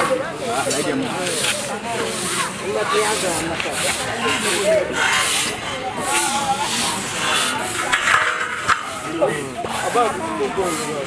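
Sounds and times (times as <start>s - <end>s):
background voices: 0.0s - 11.0s
metal grate scraping on concrete: 0.6s - 11.0s.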